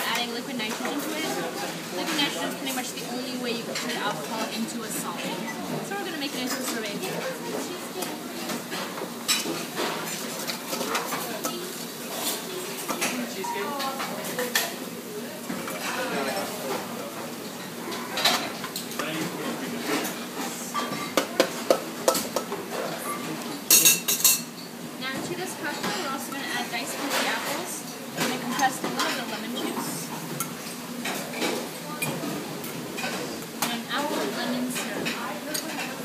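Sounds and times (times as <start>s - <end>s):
people talking in background: 0.0s - 36.0s
metal utensils clinking on bowls: 23.7s - 24.7s.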